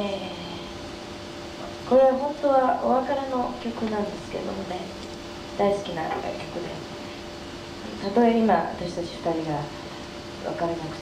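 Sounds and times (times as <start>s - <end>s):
faint steady hum: 0.0s - 11.0s
woman talking over microphone: 1.9s - 5.0s, 5.6s - 6.9s, 7.9s - 9.8s, 10.4s - 11.0s.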